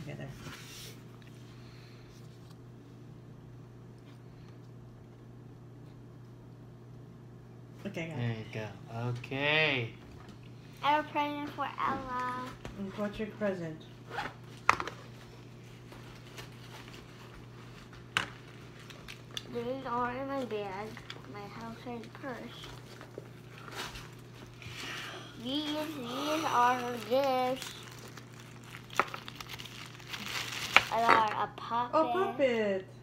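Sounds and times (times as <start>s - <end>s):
plastic bag crinkling: 25.5s - 31.4s.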